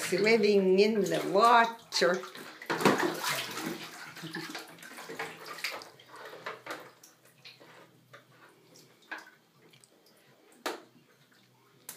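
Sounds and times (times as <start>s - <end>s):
bathwater splashing: 0.0s - 11.9s.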